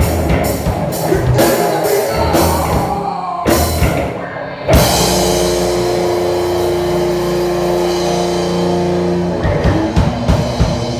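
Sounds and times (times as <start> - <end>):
rock band ringing chord: 4.7 - 10.9.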